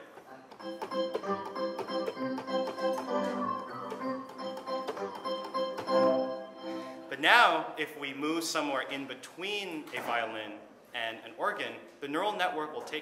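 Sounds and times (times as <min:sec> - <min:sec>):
synthesizer organ notes: 0:00.6 - 0:07.2.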